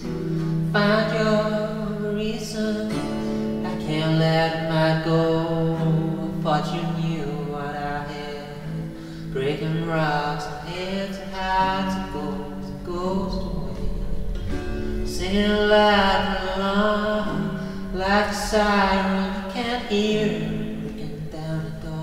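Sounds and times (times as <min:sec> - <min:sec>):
guitar: 0:00.0 - 0:22.0
indie rock song: 0:00.0 - 0:22.0
person singing: 0:00.0 - 0:22.0
held low chord: 0:11.2 - 0:21.9.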